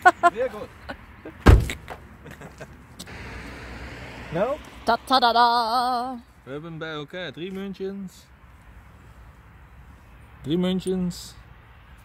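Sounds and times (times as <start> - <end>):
car door slamming: 1.4 - 2.0.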